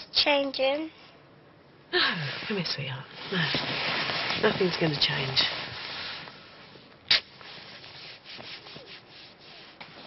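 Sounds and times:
clothes rustling: 0:02.4 - 0:10.0.

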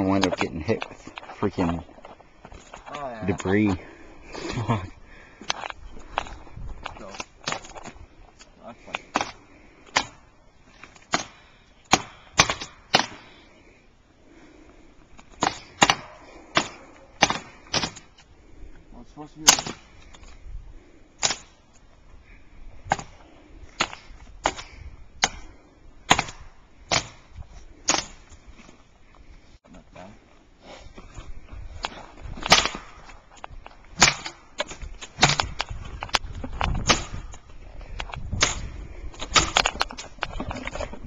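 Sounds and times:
dead wood cracking and snapping: 0:31.8 - 0:40.6.

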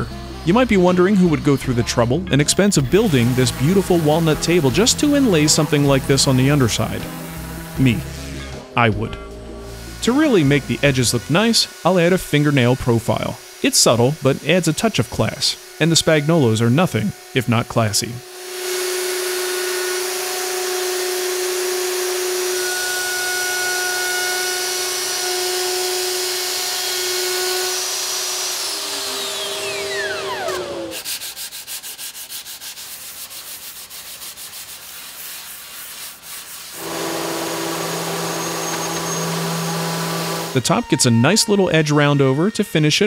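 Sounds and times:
orbital sander hum: 0:00.0 - 0:40.6
router high whine: 0:02.8 - 0:08.7, 0:09.4 - 0:31.0, 0:36.8 - 0:41.0.

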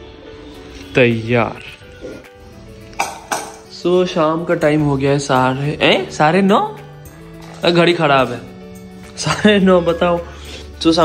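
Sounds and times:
quiet background music: 0:00.0 - 0:11.0
dishes clinking: 0:03.0 - 0:03.7.

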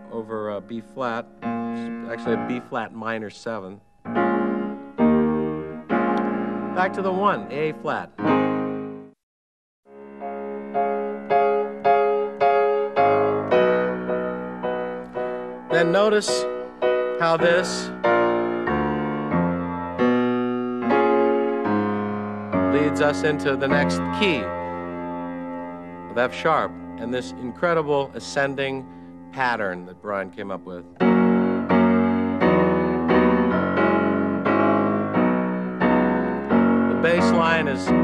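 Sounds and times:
piano chords ringing: 0:00.0 - 0:09.2, 0:09.9 - 0:38.0.

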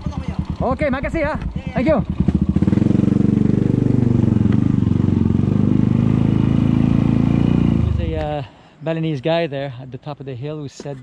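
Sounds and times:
motorcycle engine at low revs: 0:00.0 - 0:08.4.

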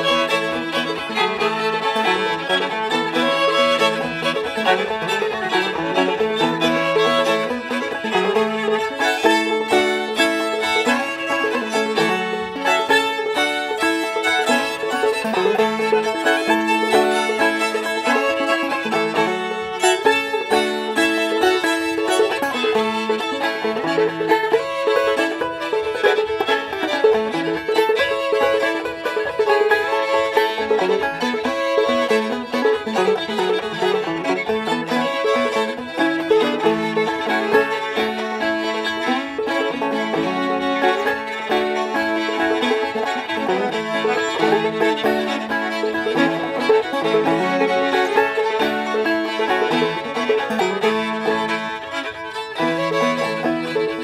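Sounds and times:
banjo: 0:00.0 - 0:54.0
fiddles playing melody: 0:00.0 - 0:54.0.

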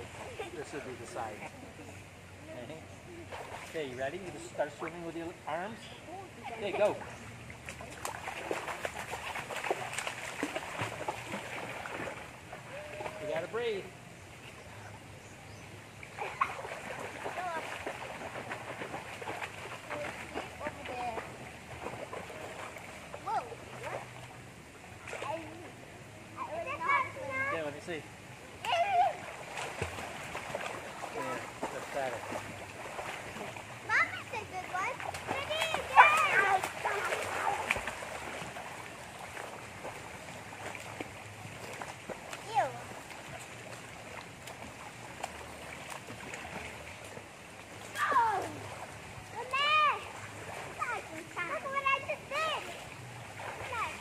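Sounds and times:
water splashing in a pool: 0:00.0 - 0:54.0
child shouting: 0:26.4 - 0:27.5, 0:28.6 - 0:29.2, 0:33.9 - 0:37.6, 0:47.9 - 0:48.6, 0:49.4 - 0:50.1
children shouting: 0:35.4 - 0:37.7.

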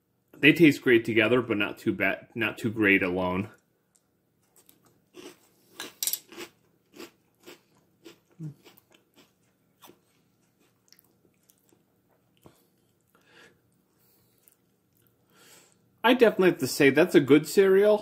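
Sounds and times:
cereal crunching while chewed: 0:04.5 - 0:15.2.

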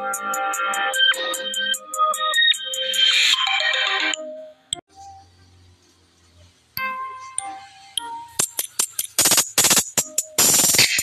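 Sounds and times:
electronic music falling notes: 0:00.0 - 0:11.0.

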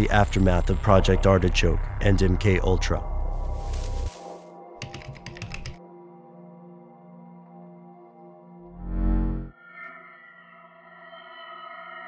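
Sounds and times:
computer keyboard typing: 0:04.8 - 0:05.8.

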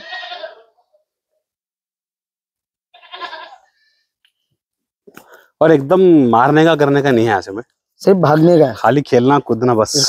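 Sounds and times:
goat bleating: 0:00.0 - 0:00.9, 0:02.9 - 0:03.8, 0:08.2 - 0:09.5.

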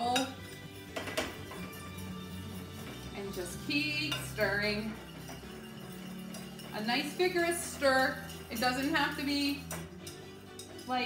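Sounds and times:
metal whisk scraping saucepan: 0:00.0 - 0:11.0.

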